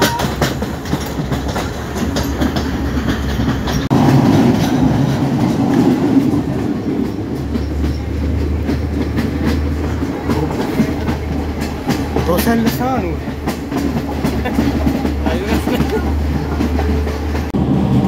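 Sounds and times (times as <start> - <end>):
train rumbling on track: 0.0 - 18.0
wheels clacking over rail joints: 0.0 - 18.0.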